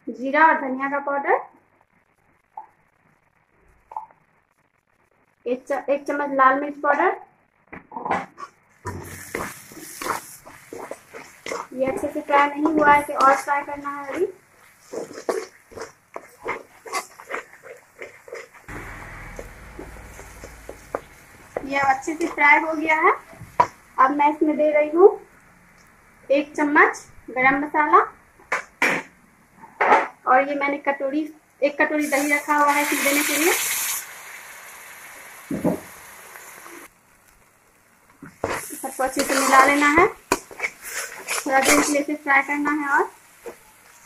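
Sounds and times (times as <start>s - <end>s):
masala sizzling in a pan: 0.1s - 44.0s
spatula scraping paste in pan: 8.4s - 18.7s, 38.2s - 42.0s
steady low hiss: 18.5s - 29.8s, 31.3s - 44.0s.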